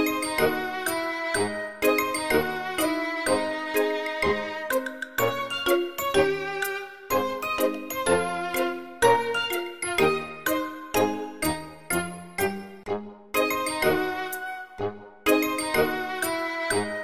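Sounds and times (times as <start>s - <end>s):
light melody background music: 0.0s - 17.0s.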